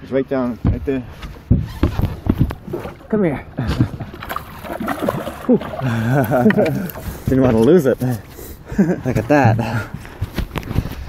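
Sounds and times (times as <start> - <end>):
fish thumping in a boat: 1.5 - 8.2.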